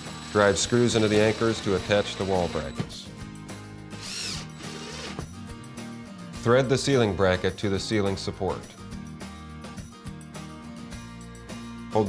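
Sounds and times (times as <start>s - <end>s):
cordless drill motor whine: 0.0s - 3.0s, 4.0s - 5.3s
soft background music: 0.0s - 12.0s.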